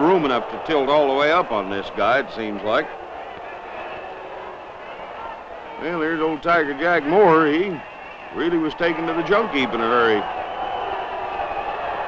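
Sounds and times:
crowd murmur: 0:00.0 - 0:08.4.

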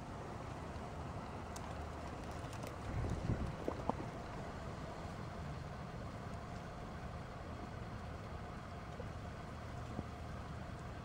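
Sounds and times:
faint steady hum: 0:00.0 - 0:11.0
low outdoor rumble: 0:00.0 - 0:11.0.

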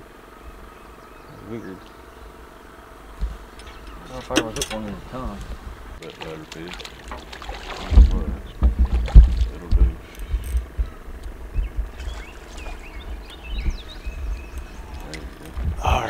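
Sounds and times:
birds chirping faintly: 0:00.0 - 0:16.0
dull knocks on a boat: 0:06.8 - 0:11.0.

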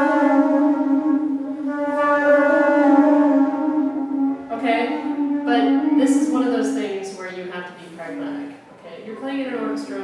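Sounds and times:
wooden flute trill: 0:00.0 - 0:07.4.

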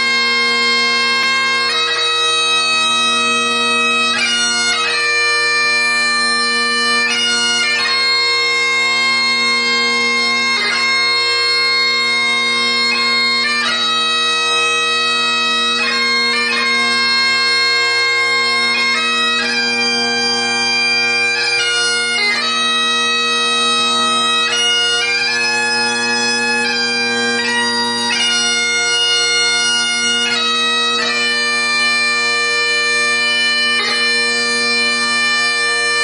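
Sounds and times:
bagpipe melody with drones: 0:00.0 - 0:36.0.

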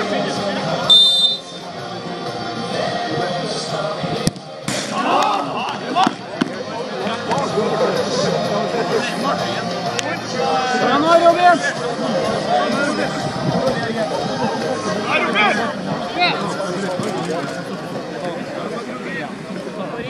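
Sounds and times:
referee's whistle blast: 0:00.9 - 0:01.6
players shouting: 0:04.8 - 0:20.0.

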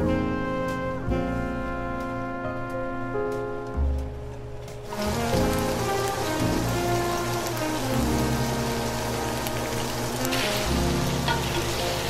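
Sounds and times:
soft background music: 0:00.0 - 0:12.0
tofu sizzling in a pan: 0:04.9 - 0:12.0.

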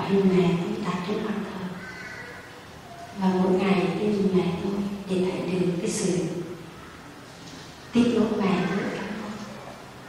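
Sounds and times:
woman speaking into a microphone: 0:00.0 - 0:01.8, 0:03.2 - 0:06.5, 0:07.9 - 0:09.5.

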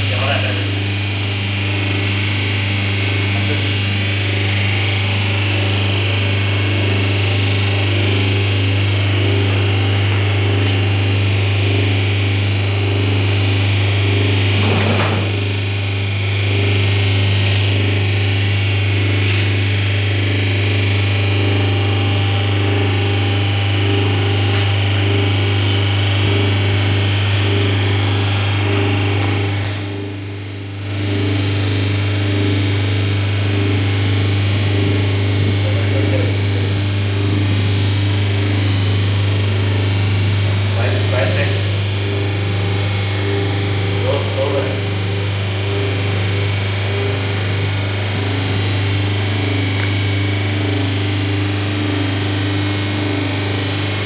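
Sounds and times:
electric motor humming: 0:00.0 - 0:54.0
pulsing drone: 0:00.0 - 0:54.0.

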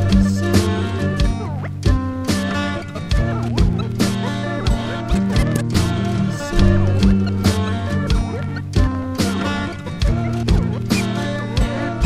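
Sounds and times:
bass notes: 0:00.0 - 0:12.0
record scratches: 0:00.0 - 0:12.0
drum hits: 0:03.6 - 0:10.7.

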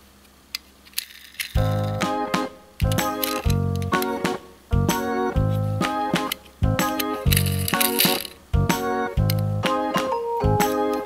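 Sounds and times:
background music with low pulse: 0:01.6 - 0:11.0.

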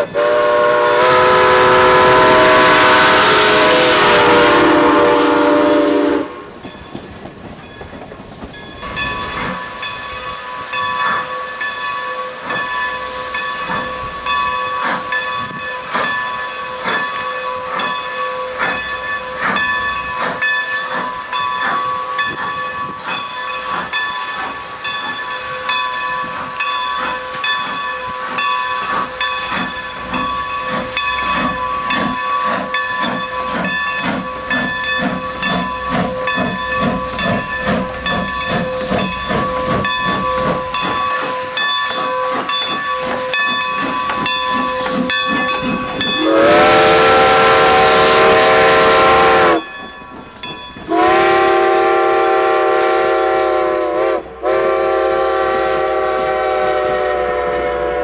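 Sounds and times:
steam whistle rising in pitch: 0:00.0 - 0:06.5, 0:46.1 - 0:49.7, 0:50.9 - 0:58.0
steam locomotive exhaust chuff: 0:00.0 - 0:58.0
hiss of escaping steam: 0:13.7 - 0:17.1, 0:17.8 - 0:47.0.

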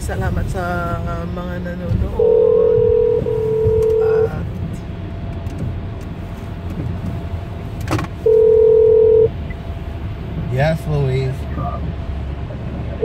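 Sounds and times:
car cabin hum: 0:00.0 - 0:10.5
telephone ringback tone: 0:02.2 - 0:04.3, 0:08.3 - 0:09.3.

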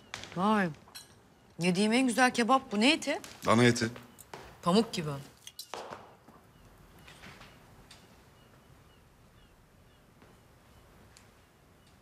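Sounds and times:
cutlery clinking on plates: 0:05.4 - 0:06.0.

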